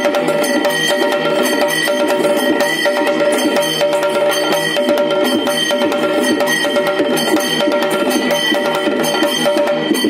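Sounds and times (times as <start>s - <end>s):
barrel drum played by hand: 0.0s - 10.0s
drum beaten with sticks: 0.0s - 10.0s.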